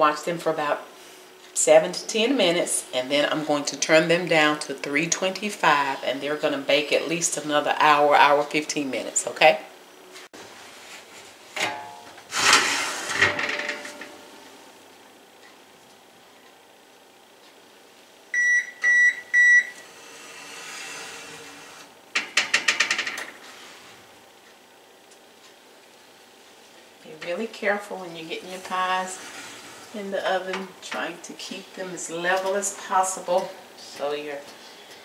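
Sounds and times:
oven rack and foil pans clattering: 11.5s - 14.5s, 22.2s - 23.5s, 27.2s - 33.6s.

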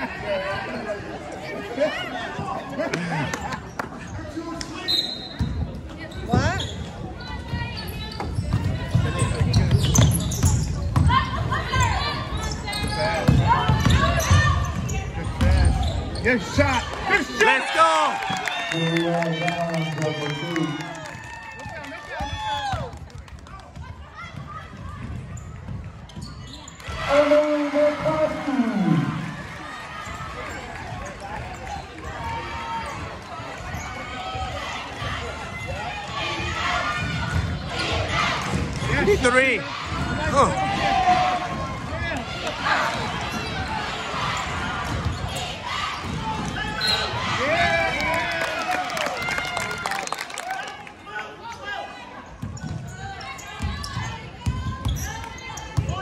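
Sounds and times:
spectators clapping: 16.9s - 23.8s, 47.4s - 51.1s.

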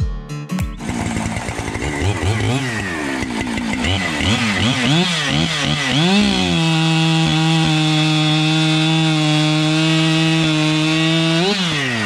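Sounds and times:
chainsaw revving: 0.8s - 12.0s.

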